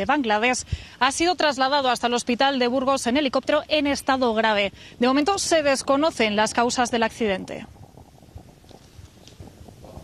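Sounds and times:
faint low rumble: 0.0 - 10.0.

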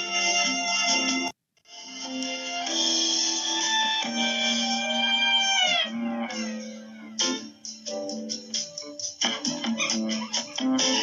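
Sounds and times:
sustained instrumental music: 0.0 - 11.0.

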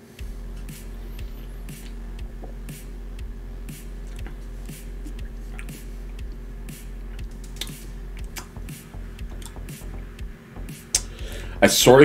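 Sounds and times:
electronic beat: 0.0 - 12.0
low hum: 0.0 - 12.0.

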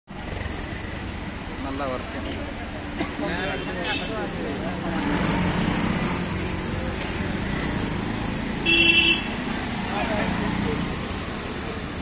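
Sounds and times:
street traffic passing: 0.1 - 12.0
vehicle horn honk: 8.6 - 9.4.

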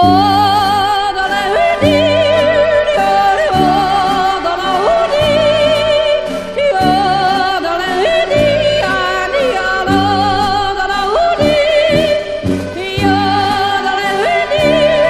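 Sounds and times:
instrumental accompaniment: 0.0 - 15.0
woman yodeling: 0.0 - 15.0.

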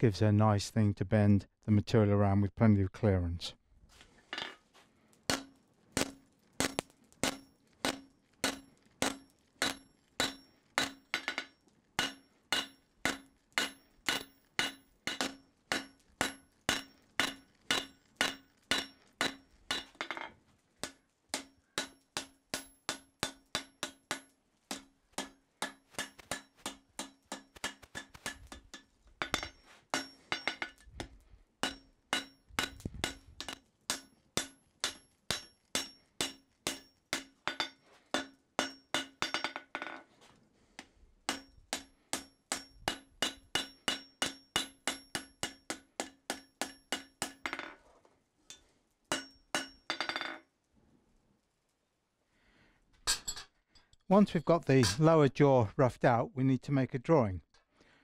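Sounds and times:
hammer striking steel on anvil: 5.3 - 40.0, 41.3 - 47.8, 48.5 - 50.4.

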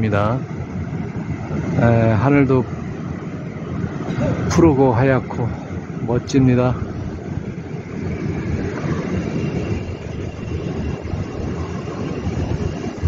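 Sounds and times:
low outdoor rumble: 0.0 - 13.0.

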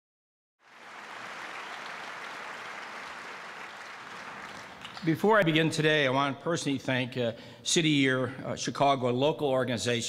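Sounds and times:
audience applause: 0.6 - 5.5.

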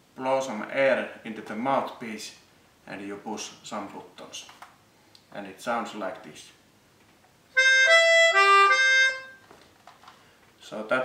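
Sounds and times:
melodica playing: 7.6 - 9.4.

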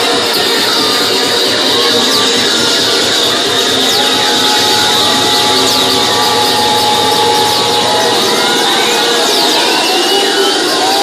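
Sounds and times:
crowd noise: 0.0 - 11.0
electronic dance music: 0.0 - 11.0
steady high tone: 0.0 - 11.0.

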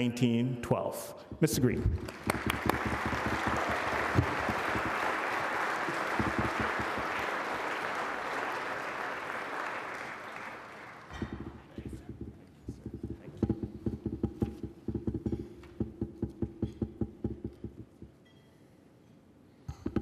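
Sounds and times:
audience applauding: 2.0 - 12.0.

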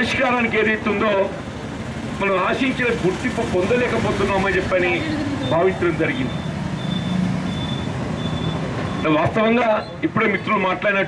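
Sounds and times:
road traffic drone: 0.0 - 11.0
faint high-pitched beep: 6.2 - 9.2.

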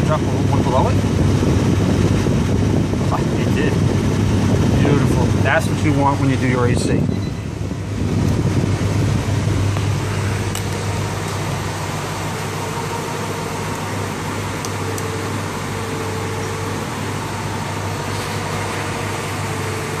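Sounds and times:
car air conditioning blower: 0.0 - 20.0
low hum: 0.0 - 20.0.

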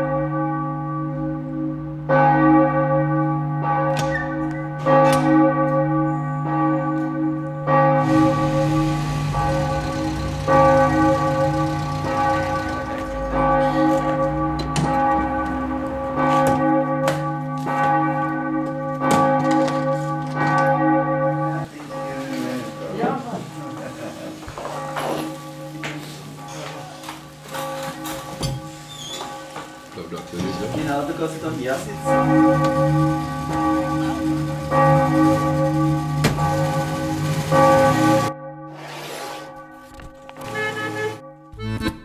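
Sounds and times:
church bells ringing: 0.0 - 38.8.

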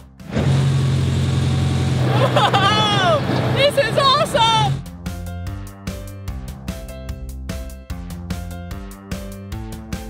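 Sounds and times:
background music: 0.0 - 10.0
ice resurfacer engine humming: 0.2 - 4.8.

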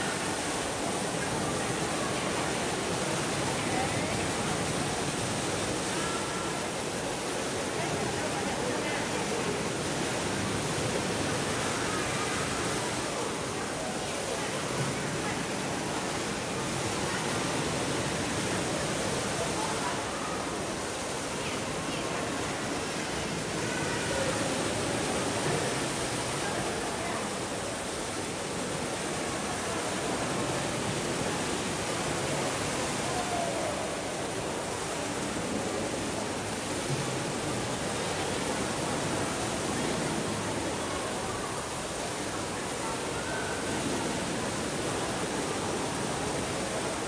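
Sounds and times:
indoor waterfall splashing: 0.0 - 47.0.

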